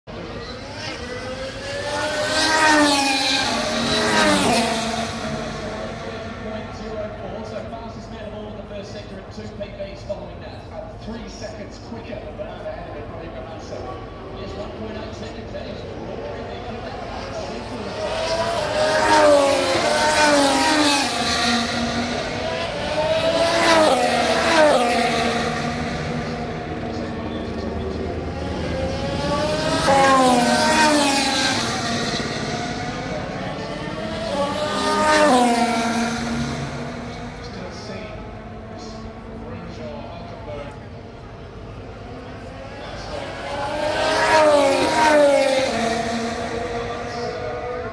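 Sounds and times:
racing cars passing: 0.1s - 47.9s.

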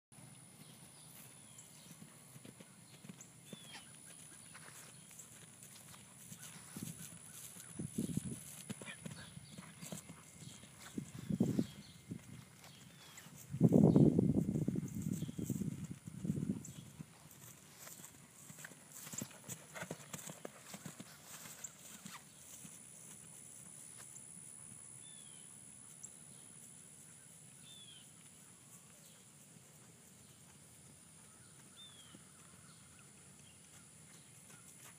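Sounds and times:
horse hooves cantering on grass: 0.2s - 34.9s.

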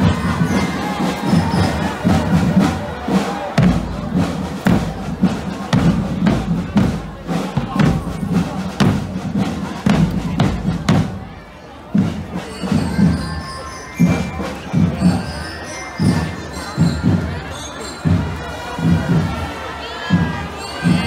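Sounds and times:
crowd noise: 0.0s - 21.0s
marching drum band: 0.0s - 21.0s.

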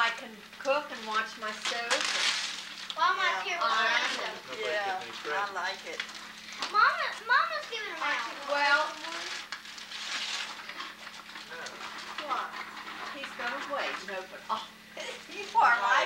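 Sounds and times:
adults and children talking: 0.0s - 9.5s, 12.1s - 16.0s
steady low hum: 0.0s - 16.0s.

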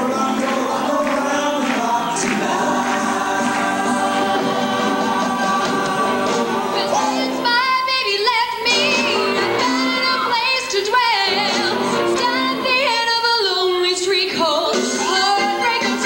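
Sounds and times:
vocal ensemble singing in harmony: 0.0s - 13.2s.

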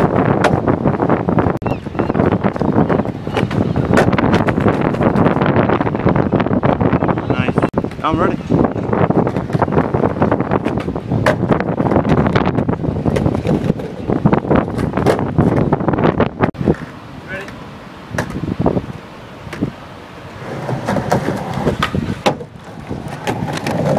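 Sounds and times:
skateboard rolling over wooden planks: 2.2s - 6.2s, 7.8s - 18.5s, 19.5s - 23.9s.

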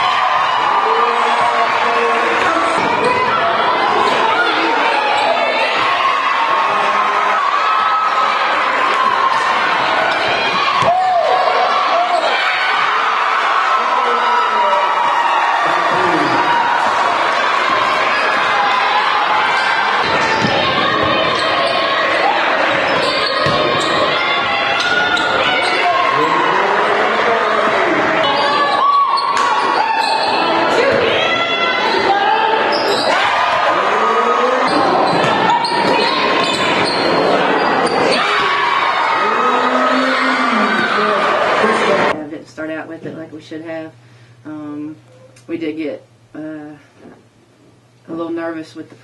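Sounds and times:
players and spectators voices: 0.0s - 42.3s
basketball bouncing on court: 20.0s - 21.8s, 22.7s - 24.1s.

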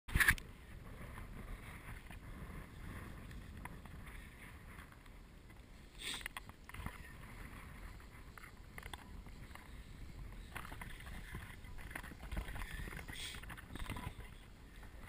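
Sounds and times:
wind rumble on microphone: 0.1s - 15.0s.

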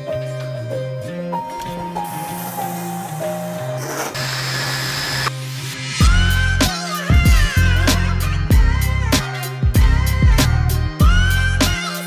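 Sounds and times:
background music with held notes: 0.0s - 12.0s
pressure washer spraying: 2.0s - 5.6s.

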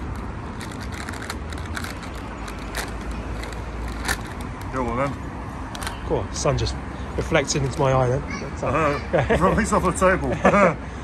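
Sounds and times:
crisp packet crinkling: 0.0s - 4.8s.

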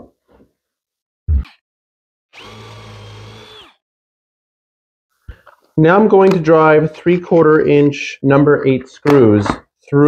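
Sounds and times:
cordless drill drilling wood: 2.3s - 3.8s.

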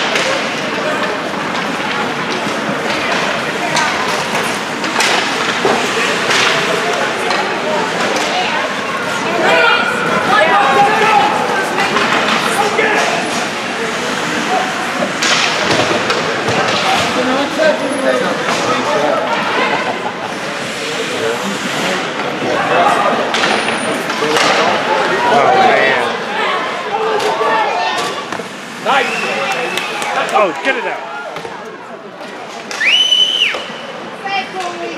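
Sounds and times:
hockey sticks and puck clacking: 0.0s - 17.7s, 18.3s - 19.0s, 20.2s - 25.6s, 27.0s - 34.9s
voices talking and calling out: 0.0s - 34.9s.

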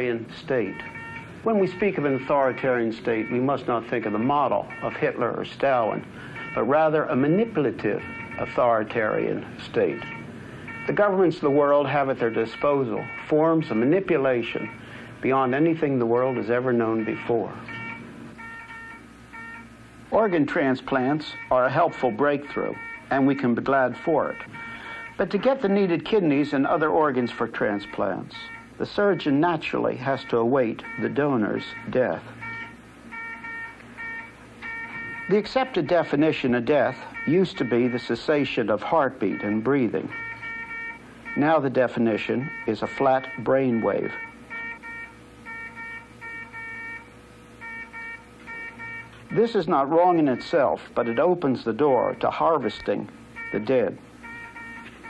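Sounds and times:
faint hum: 0.0s - 55.0s
medical monitor beeping: 0.0s - 55.0s.

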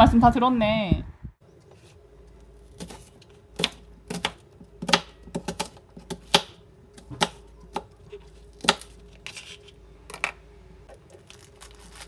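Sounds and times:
knife slicing onion: 2.7s - 9.7s.

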